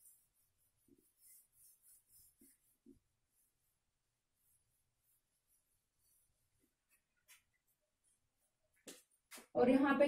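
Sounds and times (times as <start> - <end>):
eraser brushing whiteboard: 0.0 - 7.8.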